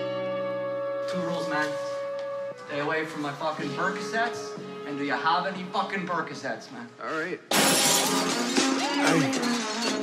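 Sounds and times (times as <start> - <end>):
glass shattering: 7.5 - 10.0.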